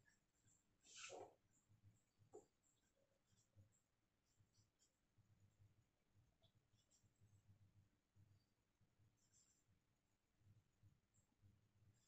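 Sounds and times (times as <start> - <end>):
marker writing on whiteboard: 0.0 - 5.1.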